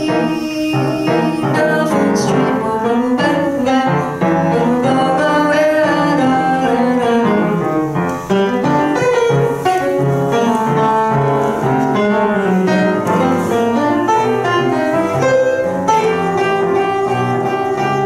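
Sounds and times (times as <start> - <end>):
jazz piano: 0.0 - 18.0.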